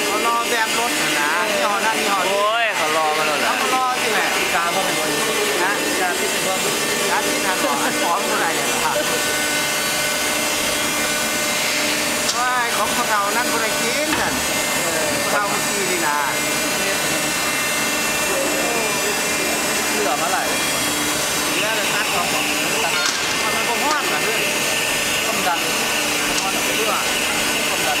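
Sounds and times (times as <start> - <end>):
factory machinery rush and hum: 0.0 - 28.0
high steady machine whine: 0.0 - 28.0
workers chattering: 0.0 - 28.0.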